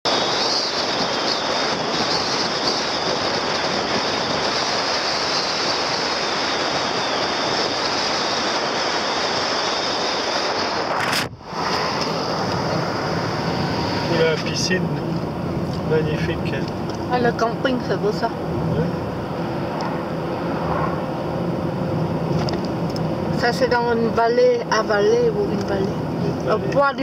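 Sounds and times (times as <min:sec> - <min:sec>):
car road noise at speed: 0:00.0 - 0:27.0
rushing wind: 0:00.0 - 0:27.0.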